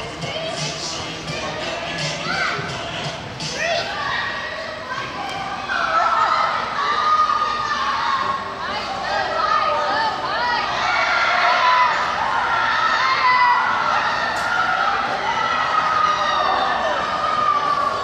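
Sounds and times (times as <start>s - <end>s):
children chattering and shouting: 0.0s - 18.0s.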